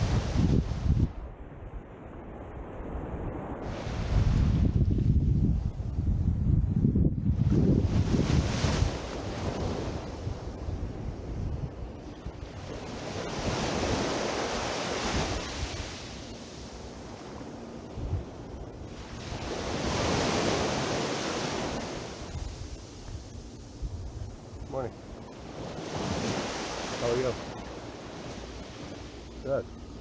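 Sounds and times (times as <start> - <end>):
ocean waves washing up shore: 0.0 - 5.1, 7.4 - 30.0
wind rumble on microphone: 0.0 - 30.0.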